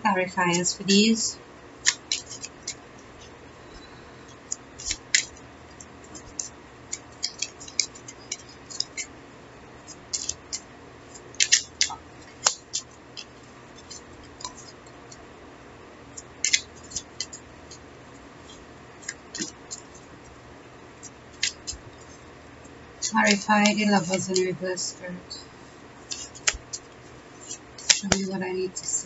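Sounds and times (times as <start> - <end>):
cards being shuffled: 1.8 - 2.8, 4.5 - 9.1, 9.9 - 14.8, 16.4 - 17.4, 18.5 - 20.1, 21.3 - 22.2, 26.0 - 28.3.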